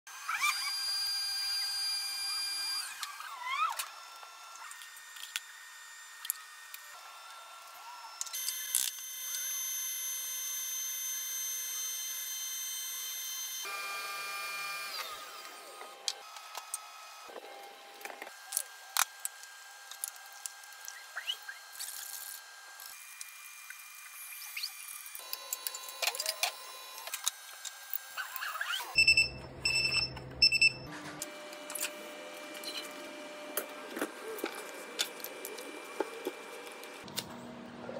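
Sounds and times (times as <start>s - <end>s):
high-pitched motor whine: 0.1s - 37.0s
oven beeper high beeps: 28.8s - 30.9s.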